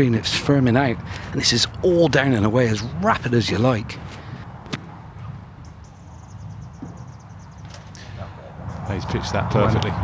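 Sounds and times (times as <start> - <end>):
faint outdoor ambience: 0.0 - 10.0.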